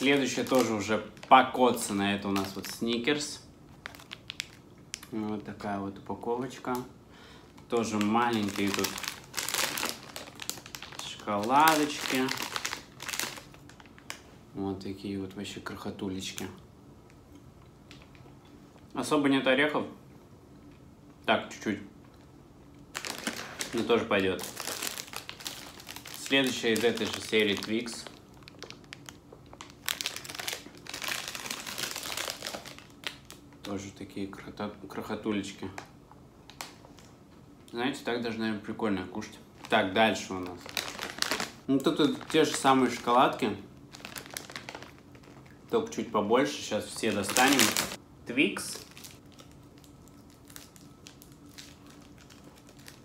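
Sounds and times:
plastic snack bag crinkling: 0:00.0 - 0:05.6, 0:07.4 - 0:14.3, 0:22.9 - 0:33.7, 0:36.5 - 0:37.1, 0:39.5 - 0:48.0, 0:48.6 - 0:53.0.

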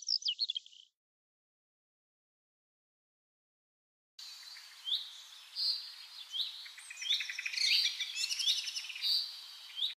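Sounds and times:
birds chirping: 0:00.0 - 0:00.9, 0:04.2 - 0:09.9.

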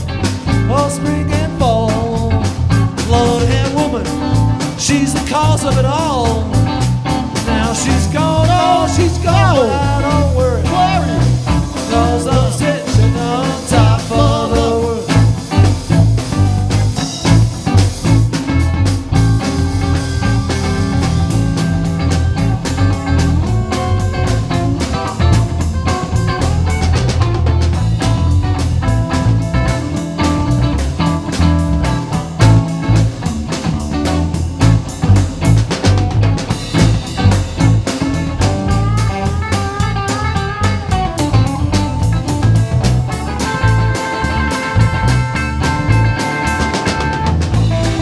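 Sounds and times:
drum kit steady beat: 0:00.0 - 0:48.0
electric bass: 0:00.0 - 0:48.0
electric guitar lines: 0:00.0 - 0:48.0.

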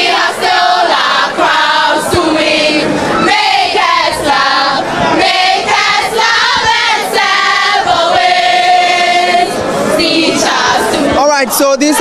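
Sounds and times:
girls singing in unison: 0:00.0 - 0:11.2.

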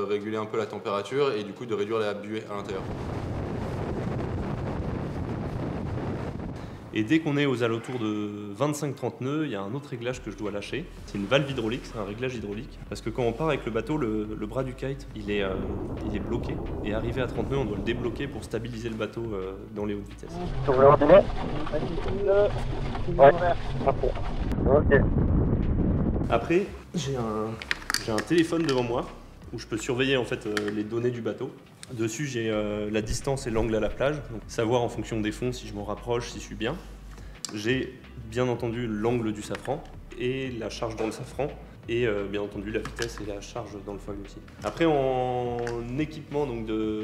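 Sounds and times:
wind buffeting microphone: 0:02.6 - 0:07.0, 0:15.0 - 0:19.6, 0:20.4 - 0:26.4.

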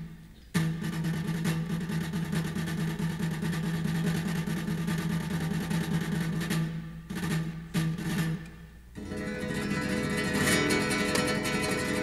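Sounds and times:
flamenco guitar strumming: 0:00.6 - 0:12.0.

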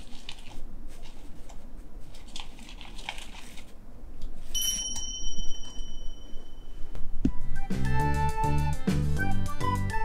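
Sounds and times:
high bell-like ding: 0:04.6 - 0:06.9.

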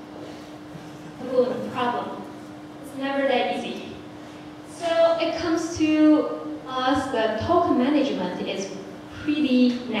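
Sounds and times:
woman speaking into microphone: 0:01.2 - 0:04.1, 0:04.7 - 0:10.0.

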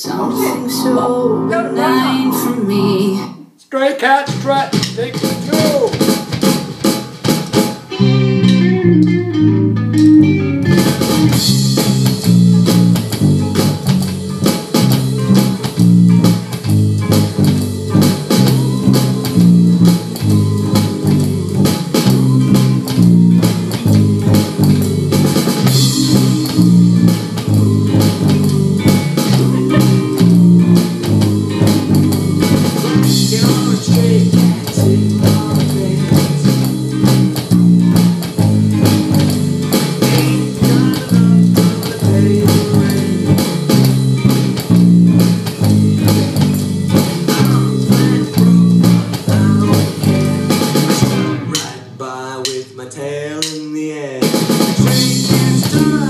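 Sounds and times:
electric bass line: 0:00.0 - 0:03.2, 0:04.3 - 0:51.9, 0:54.6 - 0:56.0
electronic drum hits: 0:04.6 - 0:08.7, 0:10.7 - 0:51.8
cymbals: 0:10.8 - 0:52.6.

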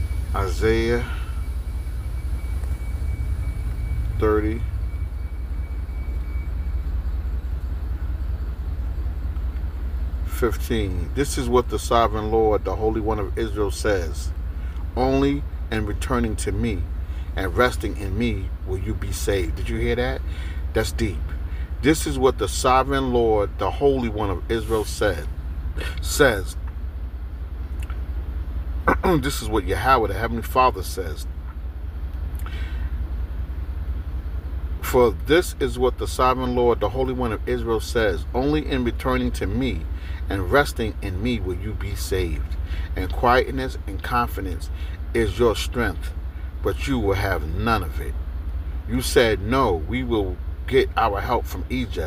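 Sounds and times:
steady low rumble: 0:00.0 - 0:52.0.

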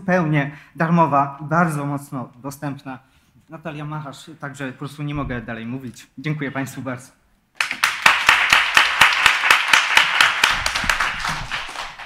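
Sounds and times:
audience applause: 0:07.6 - 0:12.0.

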